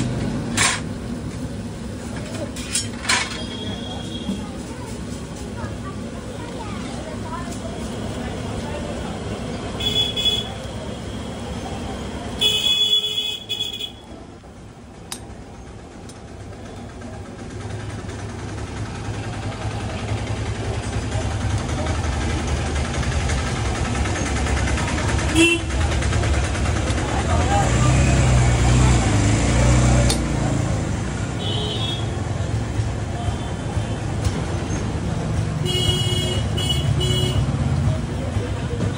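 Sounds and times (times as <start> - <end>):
engine running: 0.0 - 38.9
street traffic: 0.0 - 38.9
vehicle horn honking: 9.8 - 10.6, 12.4 - 14.1, 25.3 - 25.8, 31.4 - 32.2, 35.6 - 37.5.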